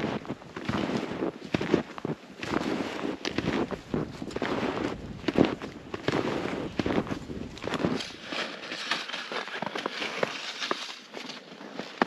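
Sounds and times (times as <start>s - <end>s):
snowshoe footsteps crunching snow: 0.0s - 12.0s.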